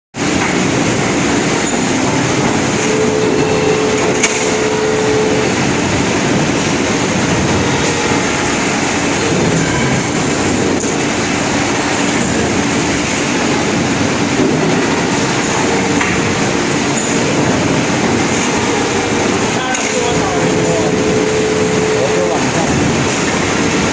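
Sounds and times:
machine running: 0.2s - 23.9s.

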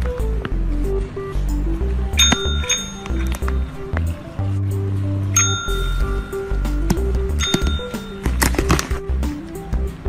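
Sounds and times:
background music: 0.0s - 10.0s
service bell ring: 2.2s - 3.8s, 5.4s - 8.3s.

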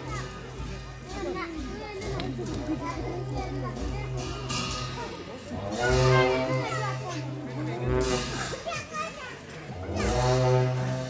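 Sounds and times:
deep long horn blast: 5.5s - 8.7s, 9.7s - 11.0s.

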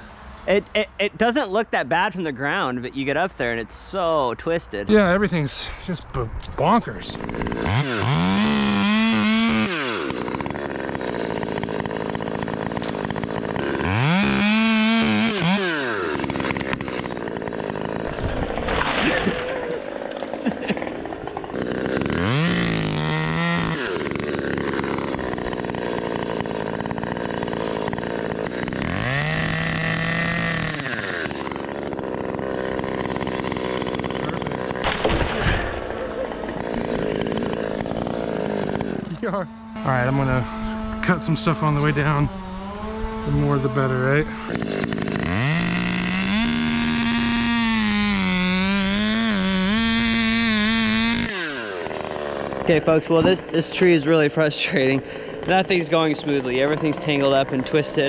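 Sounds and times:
chainsaw revving and idling: 4.9s - 58.0s.

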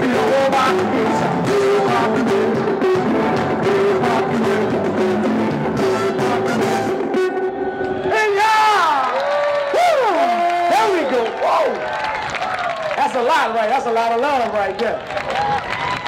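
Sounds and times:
live funk band playing: 0.0s - 7.6s.

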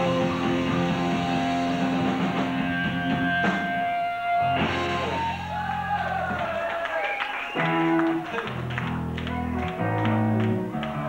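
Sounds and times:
punk rock band: 0.0s - 11.0s.

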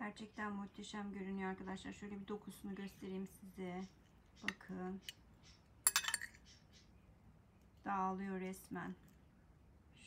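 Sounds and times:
fork clinking on ceramic plate: 5.8s - 6.4s.

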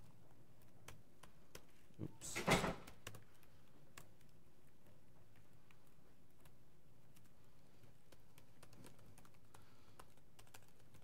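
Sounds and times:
laptop keystrokes: 2.5s - 4.4s, 5.3s - 11.0s.

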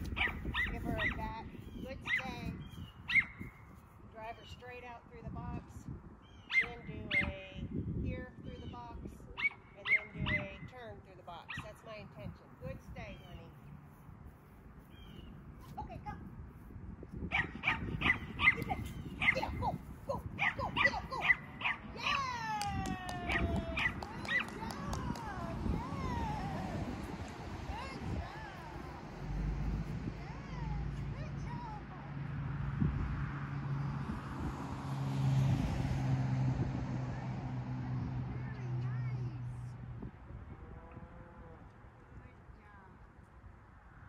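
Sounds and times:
dog barking excitedly: 17.3s - 22.3s, 23.3s - 24.7s.

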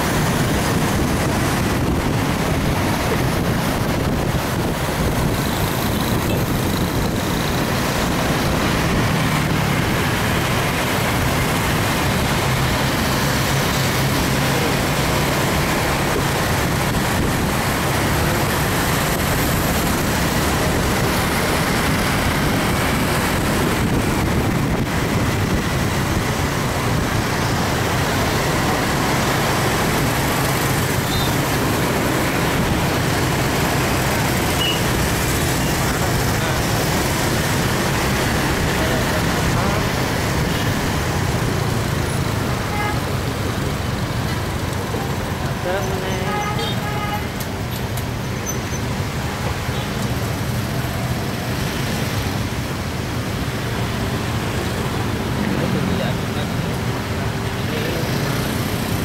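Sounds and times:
road and traffic noise: 0.0s - 59.0s.

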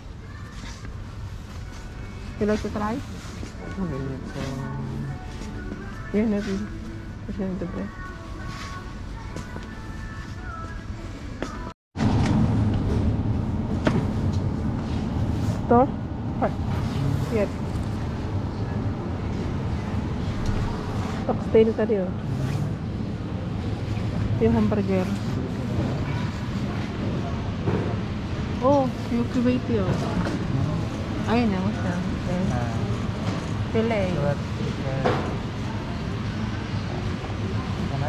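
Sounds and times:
faint background music: 0.0s - 11.8s
low rumble of store noise: 0.0s - 38.0s.

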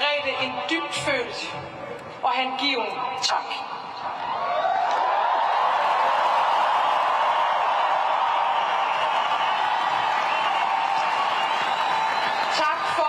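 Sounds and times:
crowd applauding and cheering: 4.2s - 13.0s.

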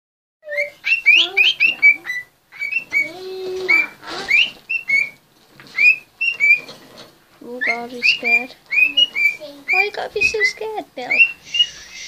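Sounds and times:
budgerigar chirping: 0.4s - 6.8s, 7.4s - 12.0s.

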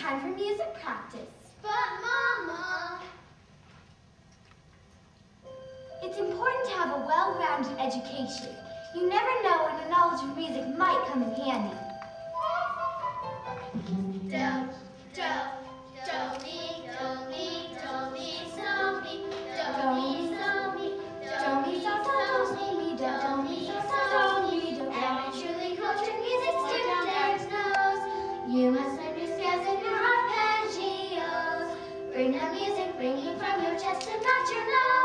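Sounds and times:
children singing: 12.4s - 35.0s.

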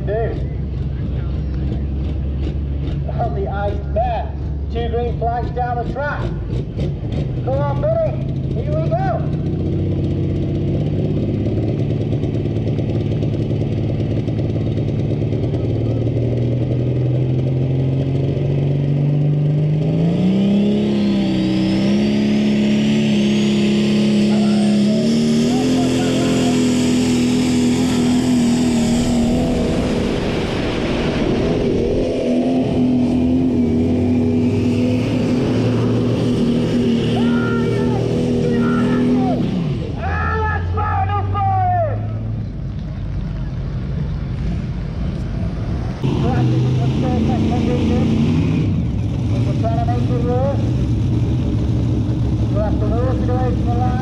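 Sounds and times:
diesel tractor engine revving: 0.0s - 54.0s.

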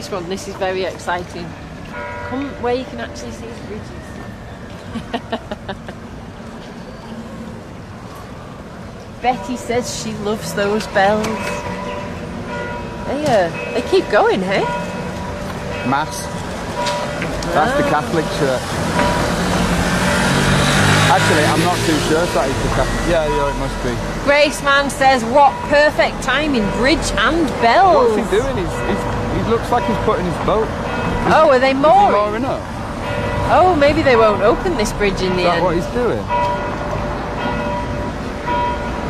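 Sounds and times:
church bells ringing: 1.9s - 3.9s, 9.2s - 39.0s
car driving past: 16.1s - 24.3s.

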